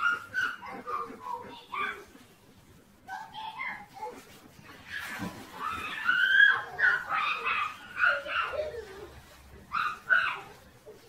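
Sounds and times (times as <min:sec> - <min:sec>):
dogs whining and yelping: 0:00.0 - 0:11.0.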